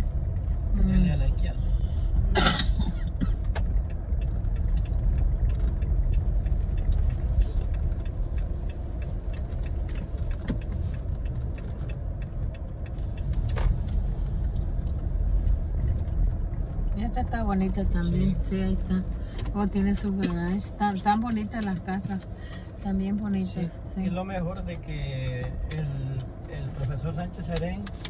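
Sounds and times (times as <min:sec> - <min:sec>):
car rumbling on dirt road: 0:00.0 - 0:28.0.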